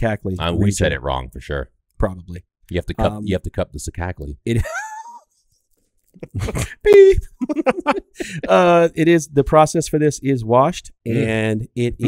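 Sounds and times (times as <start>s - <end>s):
men talking: 0.0s - 5.2s, 6.2s - 12.0s.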